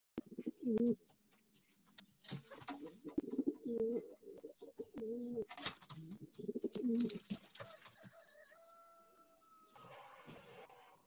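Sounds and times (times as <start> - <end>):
pigeon cooing: 0.2 - 1.0, 3.0 - 7.7.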